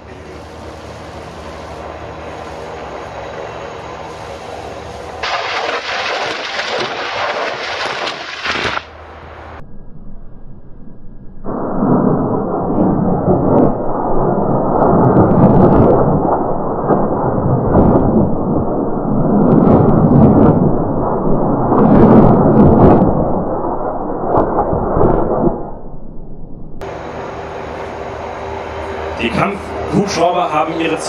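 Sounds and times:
helicopter drone: 0:00.0 - 0:10.8, 0:26.8 - 0:31.0
rockets rumbling on impact: 0:04.6 - 0:09.0, 0:11.4 - 0:25.8
short sharp cracks: 0:05.2 - 0:09.0.

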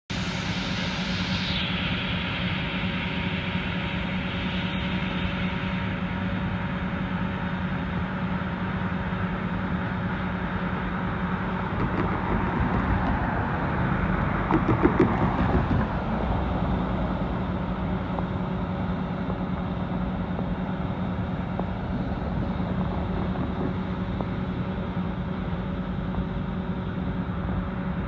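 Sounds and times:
diesel freight train rumble: 0:00.1 - 0:28.0.

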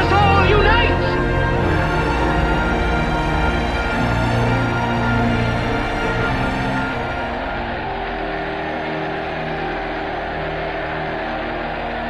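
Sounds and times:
crowd cheering: 0:00.0 - 0:12.0
orchestral film music: 0:00.0 - 0:12.0.

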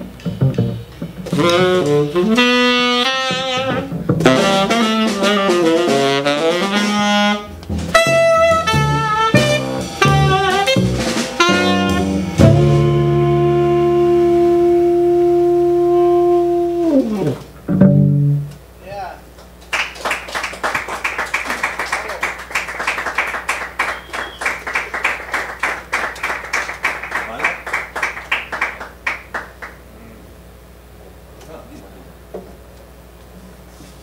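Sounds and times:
tenor saxophone long note: 0:01.3 - 0:17.5
upright bass low note: 0:07.5 - 0:18.6
audience hand clapping: 0:19.4 - 0:29.8.

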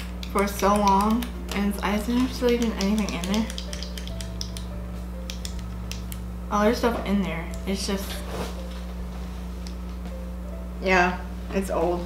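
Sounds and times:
faint steady hum: 0:00.0 - 0:12.0
small plastic pen clicks: 0:02.2 - 0:04.7.

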